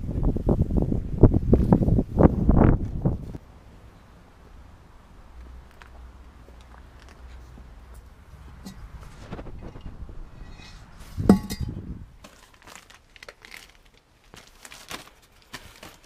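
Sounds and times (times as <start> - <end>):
rustling and handling noises: 5.6 - 16.0.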